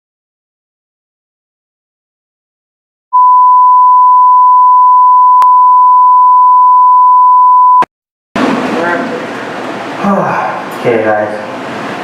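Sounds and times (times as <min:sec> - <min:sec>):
sine test tone: 0:03.2 - 0:07.9.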